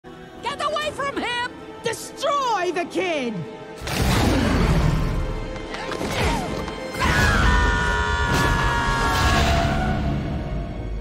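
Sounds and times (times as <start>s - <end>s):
dramatic orchestral music: 0.1s - 11.0s.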